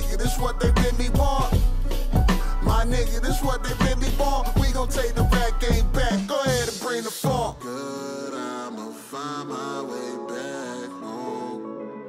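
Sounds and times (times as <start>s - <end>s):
wordless vocal harmony: 0.0s - 12.0s.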